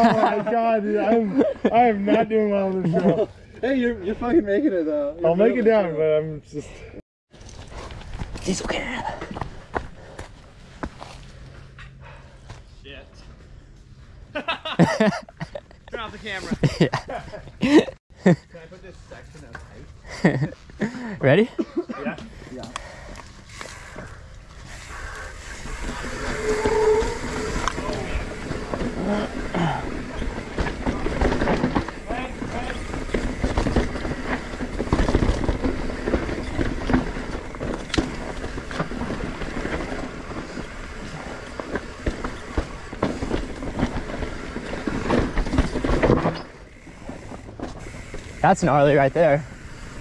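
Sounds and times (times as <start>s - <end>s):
bike tyres rolling over dirt: 7.3s - 11.7s, 22.3s - 50.0s
bike rattling and knocking: 22.6s - 50.0s.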